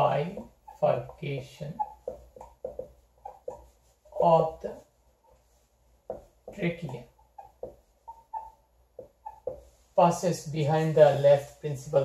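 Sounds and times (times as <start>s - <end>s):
marker squeaking on whiteboard: 0.0s - 9.9s.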